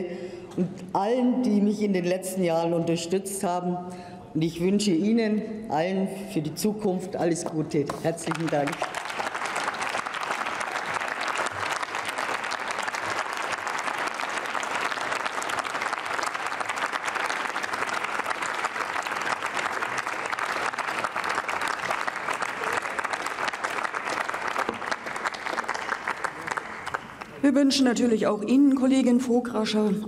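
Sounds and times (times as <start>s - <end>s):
crowd applauding: 8.2s - 27.4s.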